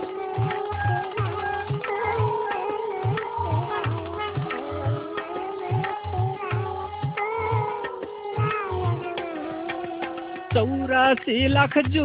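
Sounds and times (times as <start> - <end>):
tabla beat: 0.0 - 12.0.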